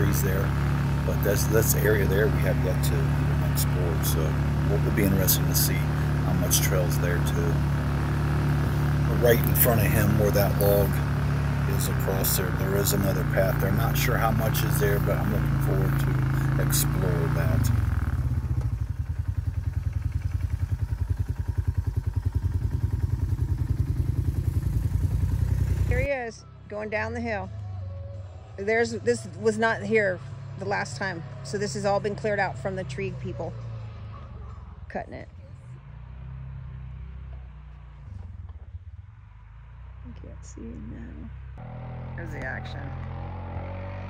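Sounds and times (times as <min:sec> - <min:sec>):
engine idling: 0:00.0 - 0:33.9.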